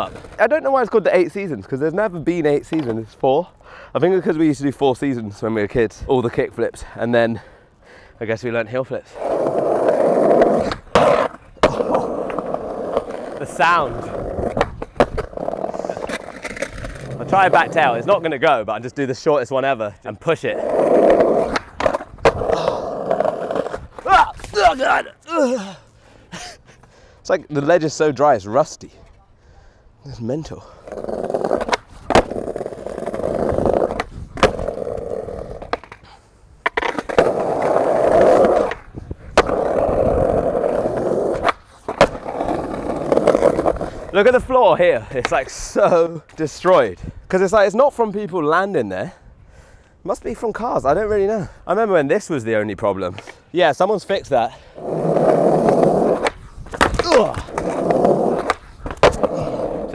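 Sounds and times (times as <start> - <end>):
skateboard wheels rolling on bricks: 0.0 - 3.2, 9.0 - 25.1, 30.6 - 46.8, 52.7 - 59.9
skateboard clacking down: 9.4 - 18.2, 30.9 - 36.0, 36.6 - 43.9, 54.8 - 59.9
skateboard knock: 14.5 - 15.4, 41.4 - 42.4, 55.6 - 59.5.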